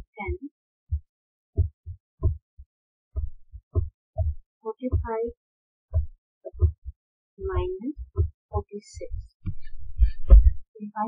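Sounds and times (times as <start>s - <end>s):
stylus knocking on tablet: 1.6s - 2.4s, 3.2s - 5.2s, 6.0s - 8.3s, 9.0s - 10.6s.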